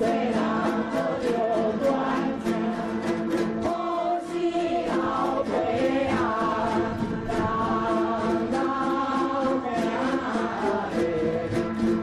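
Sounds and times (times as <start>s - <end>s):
chorus singing a folk song: 0.0s - 12.0s
moon lutes plucked in rhythm: 0.0s - 12.0s.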